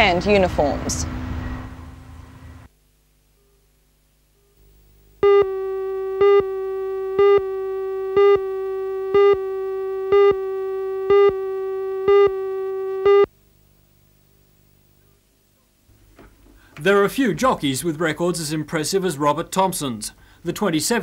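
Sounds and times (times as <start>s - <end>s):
steady electronic tone: 4.6s - 13.3s
electronic pips: 5.2s - 13.3s.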